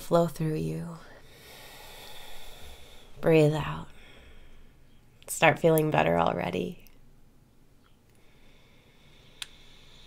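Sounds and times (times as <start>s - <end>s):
woman inhaling through the nose: 1.2s - 3.2s, 8.2s - 10.0s.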